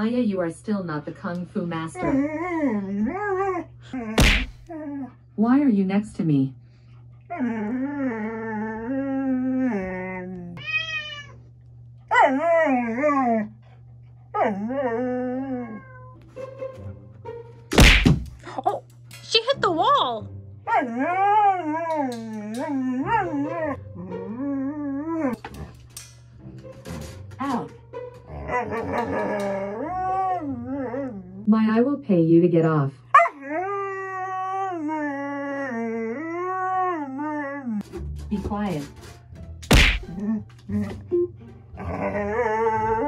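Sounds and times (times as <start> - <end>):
paws whacking metal mesh: 17.7 - 18.4, 39.6 - 40.2
dog howling: 28.3 - 31.4, 41.8 - 43.0.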